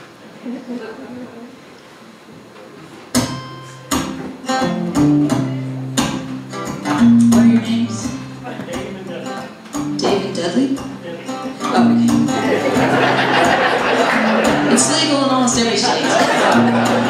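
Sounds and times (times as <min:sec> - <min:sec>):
acoustic guitar strumming chords: 0:03.1 - 0:17.0.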